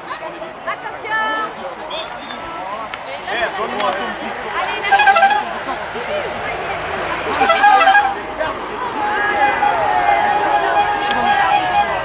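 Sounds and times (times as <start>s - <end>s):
spectators' voices: 0.0s - 12.0s
vehicle horns tooting: 4.6s - 6.3s, 7.1s - 12.0s.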